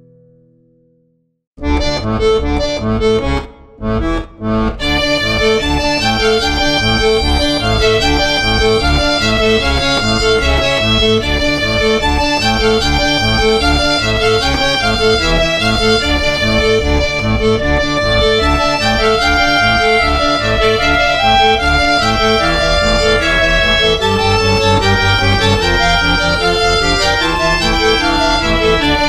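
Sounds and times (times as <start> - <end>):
accordion and fiddle polka: 1.6 - 29.0.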